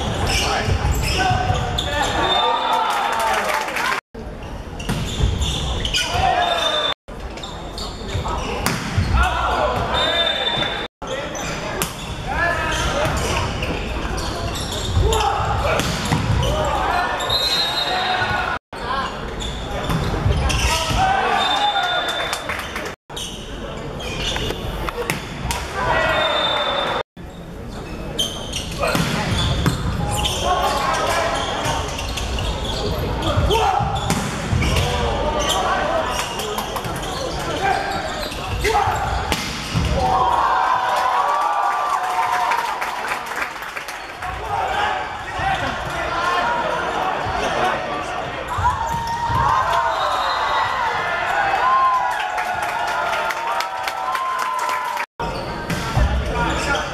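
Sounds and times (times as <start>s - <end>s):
voices shouting in hall: 0.2s - 4.0s, 16.4s - 18.6s, 20.5s - 22.6s, 25.7s - 27.0s, 33.2s - 36.3s, 37.5s - 43.1s, 44.2s - 55.1s
players shouting: 15.0s - 18.6s.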